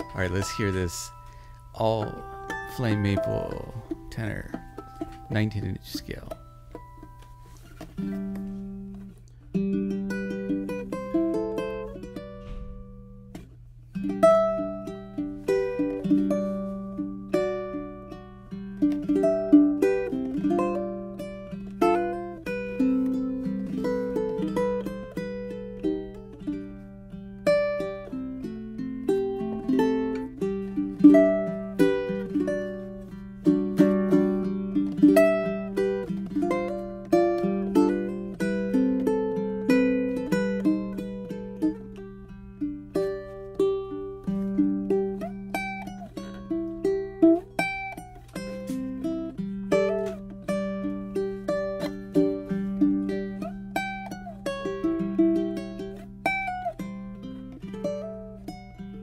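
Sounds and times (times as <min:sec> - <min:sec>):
ukulele fingerstyle playing: 0:00.0 - 0:59.0.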